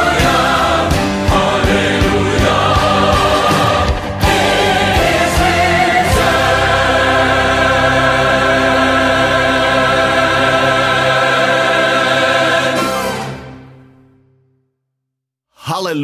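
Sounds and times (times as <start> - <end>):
choir and orchestra playing: 0.0 - 14.0.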